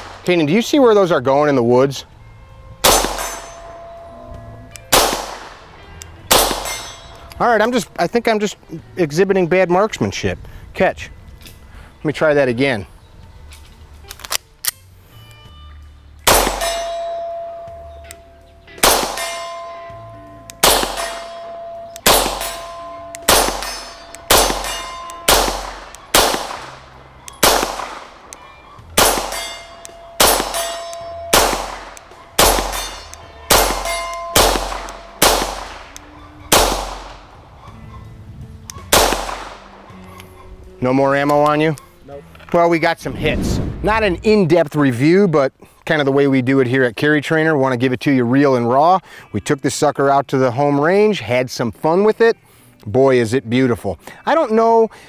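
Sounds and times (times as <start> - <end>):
pistol shots: 0.0 - 0.7, 2.8 - 3.6, 4.9 - 5.7, 6.3 - 7.2, 16.3 - 17.0, 18.8 - 19.6, 20.5 - 37.4, 38.8 - 40.0
steel target ringing: 2.8 - 7.8, 16.3 - 18.0, 18.8 - 37.4.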